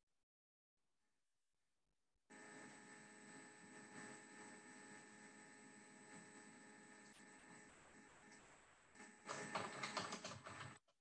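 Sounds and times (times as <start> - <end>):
typing on computer keyboard: 9.3 - 10.8.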